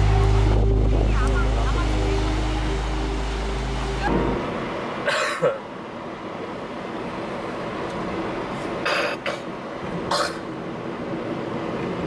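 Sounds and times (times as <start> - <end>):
background music: 0.0 - 4.8
road noise hum: 0.0 - 12.0
man making gruff cough-like noise: 5.0 - 5.6.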